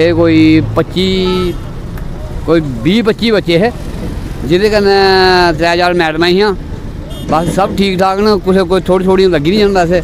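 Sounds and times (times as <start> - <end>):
man speaking: 0.0 - 1.6, 2.3 - 3.8, 4.4 - 6.6, 7.2 - 10.0
roadside traffic noise: 0.0 - 10.0.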